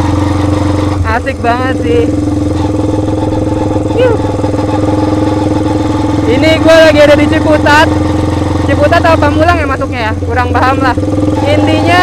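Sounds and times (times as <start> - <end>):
motorcycle engine running: 0.0 - 12.0
short voice sound: 3.9 - 4.3.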